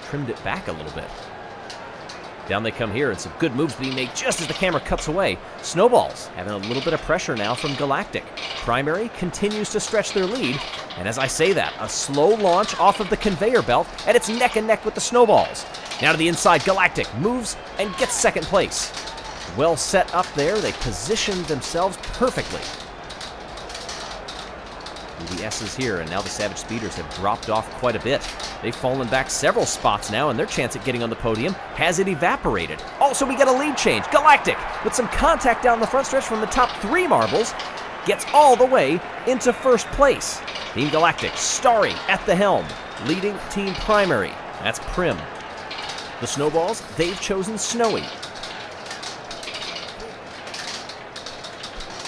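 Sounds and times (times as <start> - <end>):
marbles rolling on plastic track: 0.1 - 52.0.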